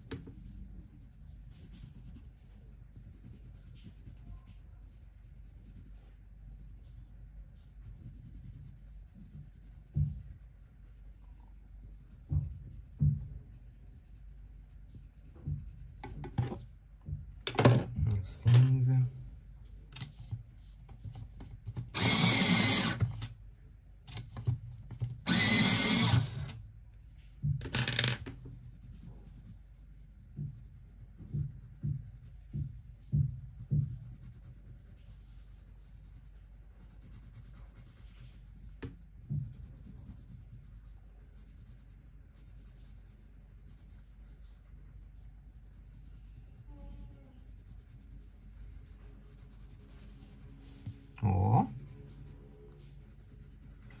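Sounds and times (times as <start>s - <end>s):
pencil scratching on paper: 0.0s - 16.7s, 18.4s - 23.3s, 25.2s - 26.6s, 27.7s - 54.0s.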